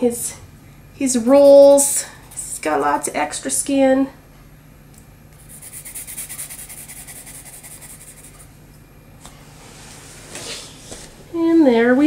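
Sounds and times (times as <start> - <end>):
pencil scratching on paper: 5.4 - 8.5.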